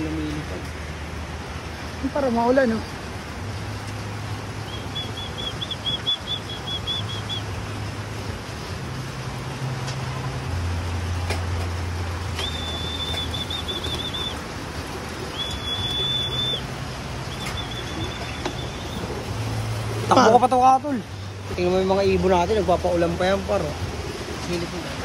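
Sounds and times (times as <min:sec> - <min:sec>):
rain hissing: 0:00.0 - 0:25.0
high trilling whistle: 0:12.4 - 0:14.4, 0:15.3 - 0:16.6.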